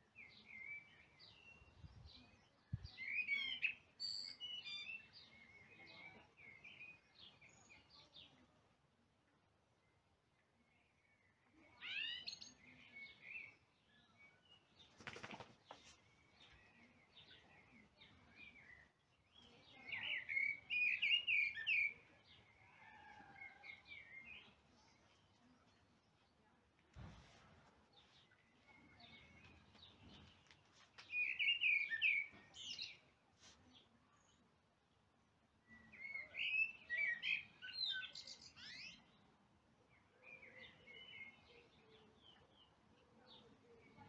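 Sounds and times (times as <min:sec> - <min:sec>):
small birds chirping and singing: 0:00.0 - 0:27.1, 0:27.7 - 0:44.0.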